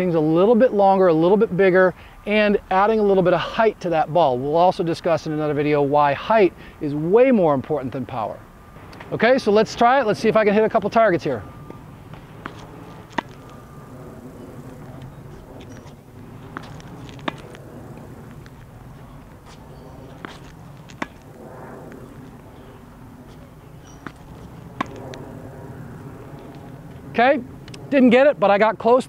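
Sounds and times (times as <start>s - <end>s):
racket hitting ball: 11.6s - 26.7s
tennis ball bouncing: 11.6s - 26.7s.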